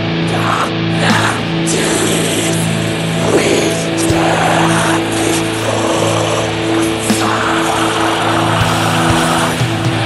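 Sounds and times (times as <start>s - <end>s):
distorted electric guitars: 0.0s - 10.0s
harsh noise wash: 0.0s - 10.0s.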